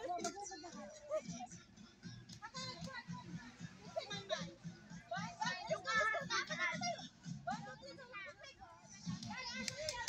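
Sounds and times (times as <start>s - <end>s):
background music with steady beat: 0.0s - 10.0s
high-pitched voices chattering: 2.3s - 10.0s.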